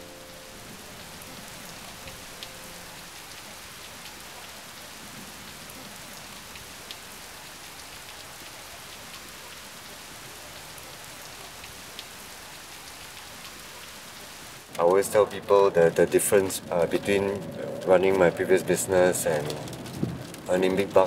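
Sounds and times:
steady rain falling: 0.0s - 21.0s.

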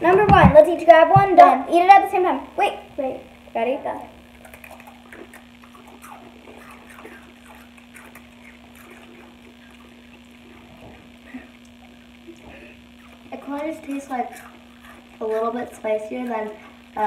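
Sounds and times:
steady low hum: 0.0s - 17.0s
people chewing crunchy chips: 4.2s - 17.0s.

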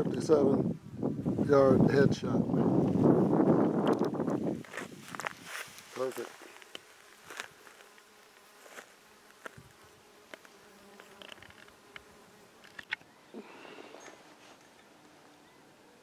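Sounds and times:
flying insect buzzing: 0.0s - 1.5s, 2.4s - 16.0s.

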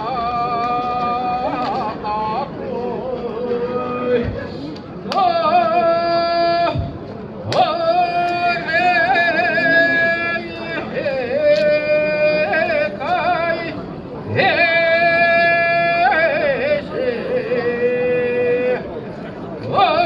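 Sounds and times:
person singing work chant: 0.0s - 19.0s, 19.6s - 20.0s.

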